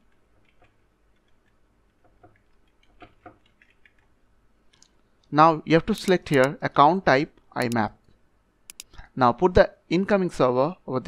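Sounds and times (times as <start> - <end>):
keyboard key clicks: 5.9 - 6.5, 7.6 - 7.8, 8.7 - 8.9.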